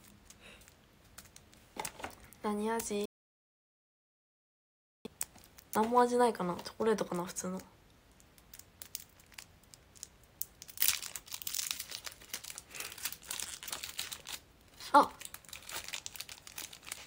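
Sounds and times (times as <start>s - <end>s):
snack wrapper tearing and crinkling: 8.2s - 17.0s.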